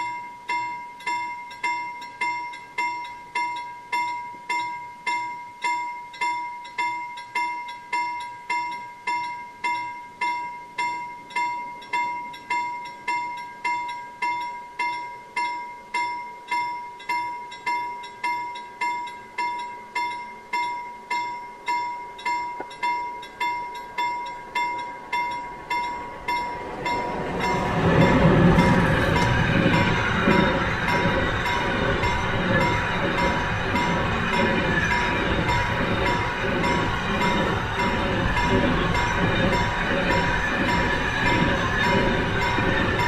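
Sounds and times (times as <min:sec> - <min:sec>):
level crossing warning bell: 0:00.0 - 0:43.0
freight train rumbling past: 0:22.7 - 0:43.0.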